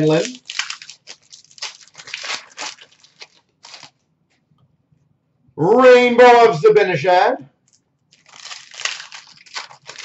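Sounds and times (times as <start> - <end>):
foil wrapper tearing and crinkling: 0.0 - 4.0, 8.1 - 10.0.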